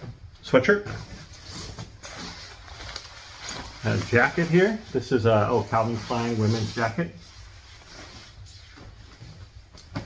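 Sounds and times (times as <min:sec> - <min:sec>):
clothing rustling: 0:01.0 - 0:10.0.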